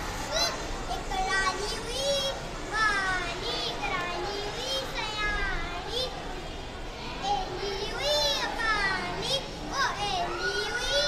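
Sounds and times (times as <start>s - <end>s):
boy reciting in sing-song voice: 0.1s - 6.4s, 7.1s - 11.0s.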